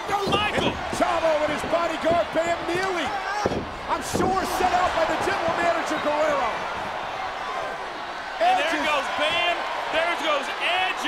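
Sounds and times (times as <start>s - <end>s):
sharp thuds: 0.2s - 5.8s.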